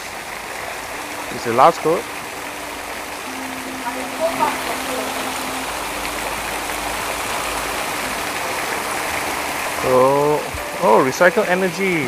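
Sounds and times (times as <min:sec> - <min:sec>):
water pouring and splashing: 0:00.0 - 0:12.0.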